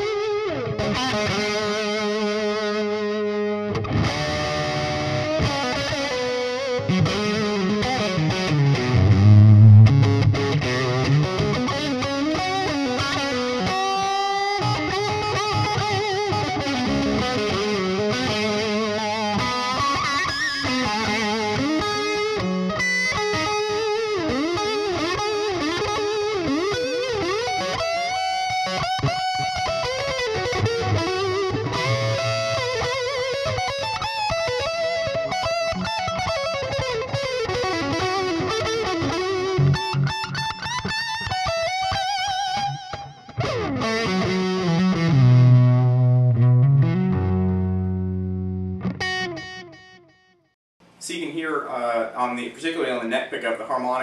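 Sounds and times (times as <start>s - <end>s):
overdriven electric guitar lead: 0.0s - 50.2s.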